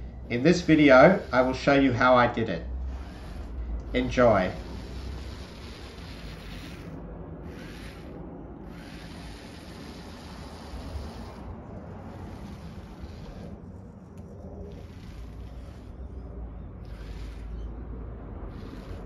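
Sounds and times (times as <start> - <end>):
toy car motors running: 0.0 - 16.2, 16.8 - 17.8, 18.4 - 19.0.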